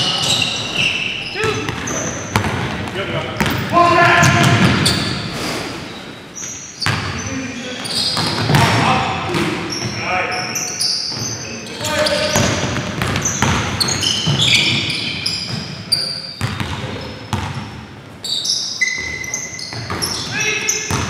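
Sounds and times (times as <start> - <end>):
sneaker squeaks: 0.0 - 2.7, 3.4 - 21.0
basketball bouncing: 1.4 - 3.6, 8.2 - 10.0, 12.3 - 14.9, 16.4 - 17.7.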